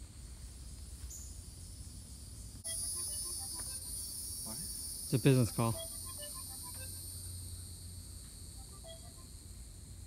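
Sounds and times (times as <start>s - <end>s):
high-pitched insect drone: 1.1s - 9.9s.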